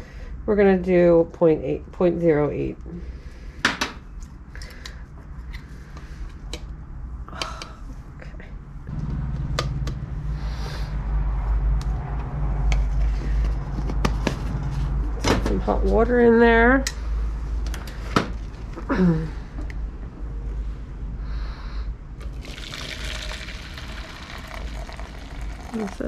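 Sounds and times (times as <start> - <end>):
steady low rumble: 5.1 - 22.4.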